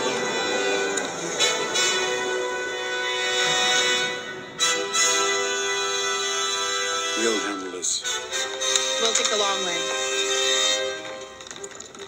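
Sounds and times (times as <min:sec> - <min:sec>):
orchestral music sustained chords: 0:00.0 - 0:11.6.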